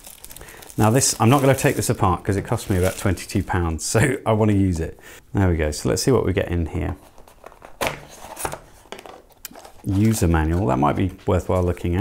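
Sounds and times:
card rustling: 0:00.0 - 0:03.6, 0:06.8 - 0:12.0.

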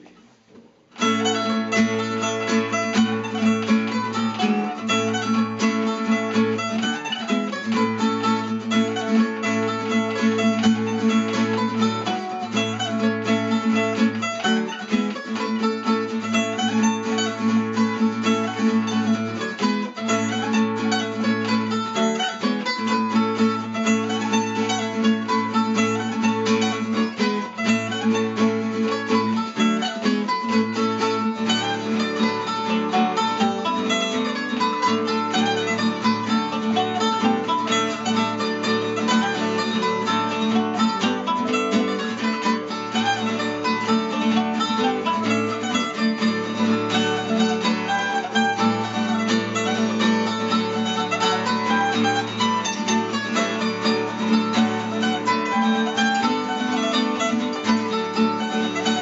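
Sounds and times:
acoustic guitar accompaniment: 0:00.0 - 0:59.0
mandolin playing polka melody: 0:00.0 - 0:59.0.

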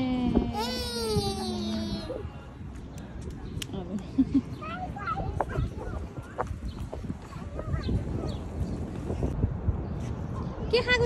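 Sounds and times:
wind rumbling on microphone: 0:00.0 - 0:11.0
young children's voices: 0:04.4 - 0:08.8.

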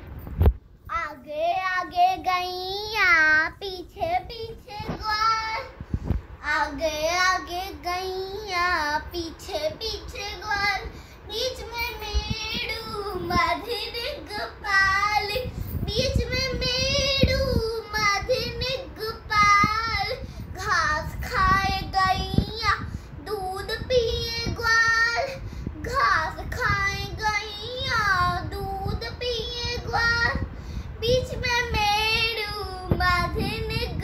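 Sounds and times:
girl singing unaccompanied: 0:00.8 - 0:34.0.

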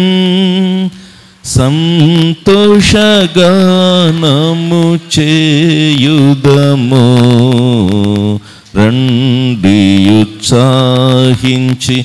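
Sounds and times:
man singing a hymn: 0:00.0 - 0:12.0.

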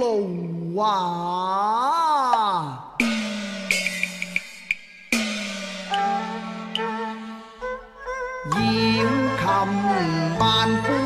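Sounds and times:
sharp percussion clicks: 0:02.3 - 0:07.4
held instrumental note: 0:03.0 - 0:08.6.

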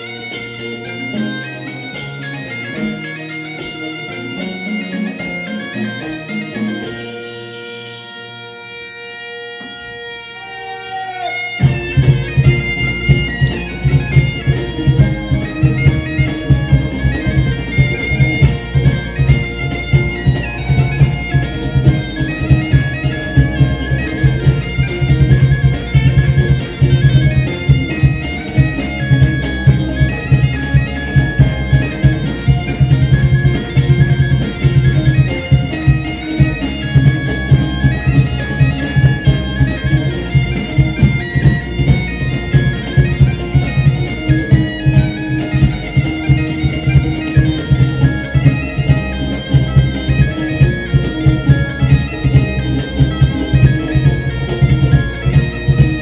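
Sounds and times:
bagpipe drone and melody: 0:00.0 - 0:56.0
regular drum beat: 0:11.6 - 0:56.0.

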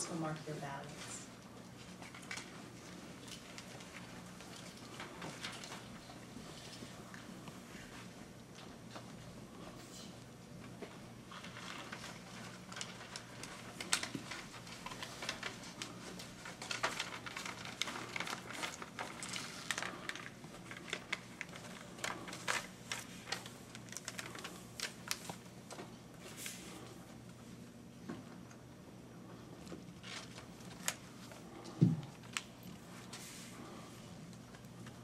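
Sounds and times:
low electrical hum: 0:00.0 - 0:35.0
pens and paper clicking: 0:01.8 - 0:07.3, 0:11.3 - 0:25.9.

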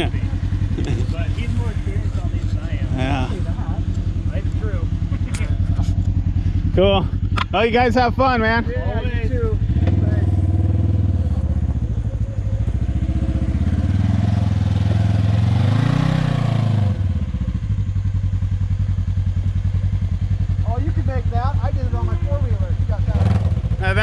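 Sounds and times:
engine idling: 0:00.0 - 0:24.0
off-road vehicle engine revving: 0:00.0 - 0:24.0.

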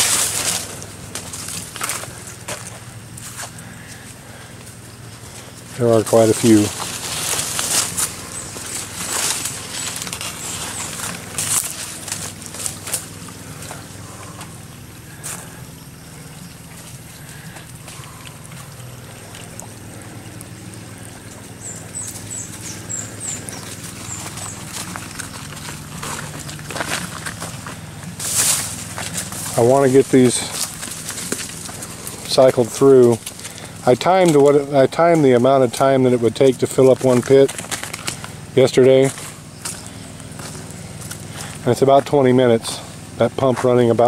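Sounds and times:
footsteps: 0:00.0 - 0:15.6, 0:20.4 - 0:43.8
plants rustling against camera: 0:00.0 - 0:44.0
clicks and scuffs: 0:36.8 - 0:41.7.

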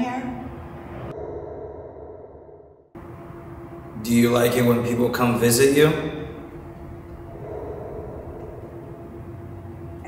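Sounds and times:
low steady hum: 0:03.0 - 0:10.0.

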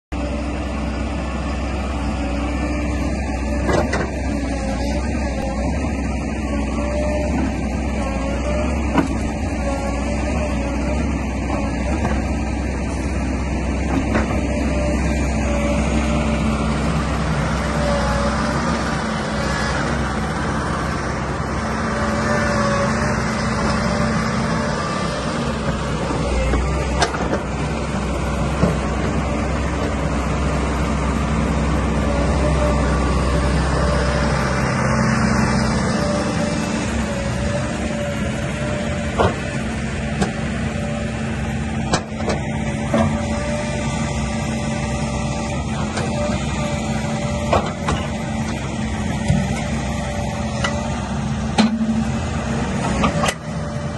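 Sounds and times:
excavator diesel engine running: 0:00.1 - 0:53.9.

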